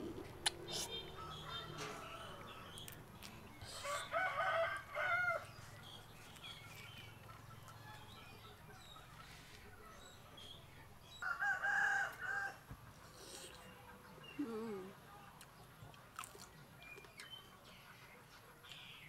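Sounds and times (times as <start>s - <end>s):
rooster crowing: 1.2s - 2.7s, 3.8s - 5.5s, 11.2s - 12.6s.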